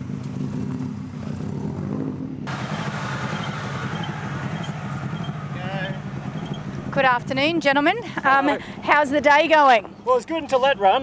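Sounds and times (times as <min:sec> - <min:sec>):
car engine running at low revs: 0:00.0 - 0:08.2.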